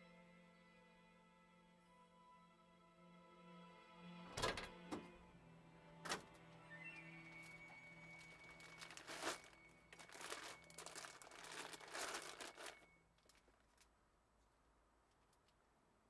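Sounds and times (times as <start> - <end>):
crinkling and rustling: 6.1 - 15.6.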